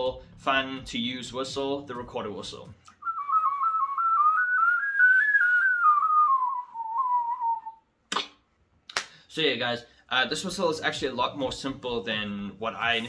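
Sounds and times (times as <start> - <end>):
warbling mouth whistle: 2.9 - 8.3.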